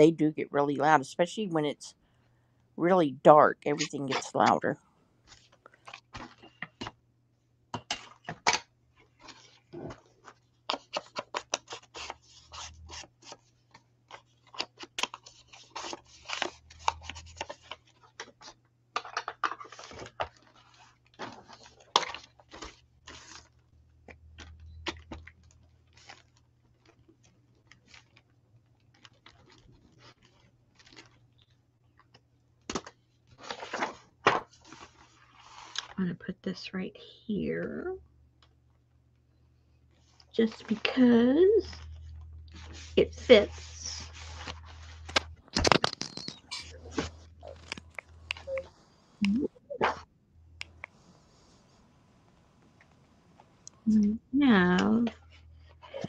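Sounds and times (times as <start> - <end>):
paper rustling and crinkling: 5.2 - 7.0, 7.8 - 23.7, 24.4 - 36.0, 39.9 - 48.5.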